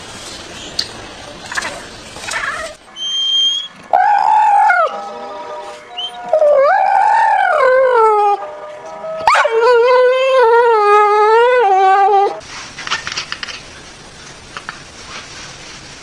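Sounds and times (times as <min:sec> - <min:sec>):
dog howling: 0:03.9 - 0:05.0, 0:06.0 - 0:08.4, 0:09.2 - 0:12.4.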